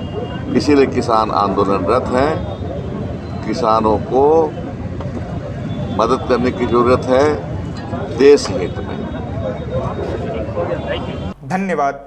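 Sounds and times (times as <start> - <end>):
man speaking: 0.5 - 2.6, 3.4 - 4.6, 5.9 - 9.1, 11.4 - 12.0.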